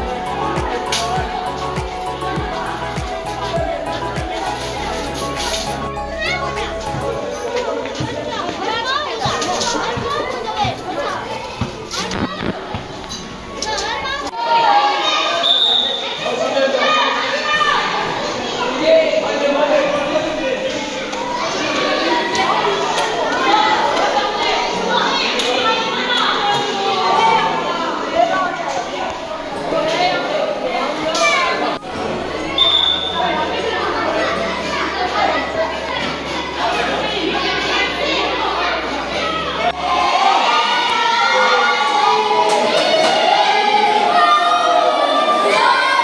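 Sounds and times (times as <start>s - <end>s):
group singing long held notes: 0.0s - 6.0s
children talking and calling out: 0.0s - 46.0s.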